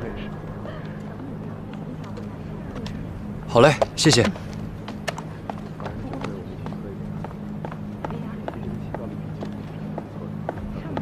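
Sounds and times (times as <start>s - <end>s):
faint background chatter: 0.0s - 11.0s
low hum: 0.0s - 11.0s.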